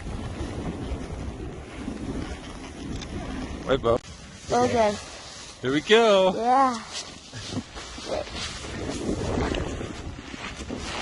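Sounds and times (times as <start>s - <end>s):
wind noise: 0.0s - 11.0s
fabric rubbing on microphone: 4.0s - 11.0s.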